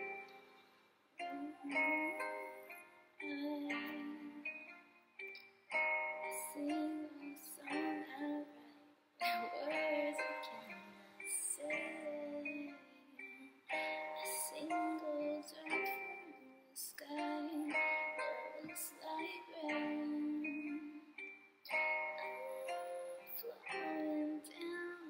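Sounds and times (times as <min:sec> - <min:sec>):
woman singing into microphone: 0:03.2 - 0:04.5, 0:06.2 - 0:08.6, 0:09.2 - 0:12.8, 0:13.7 - 0:21.0, 0:22.1 - 0:25.0.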